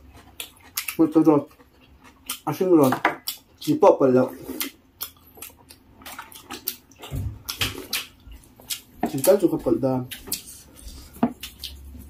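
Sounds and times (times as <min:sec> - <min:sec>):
slurping and chewing: 0:00.0 - 0:12.0.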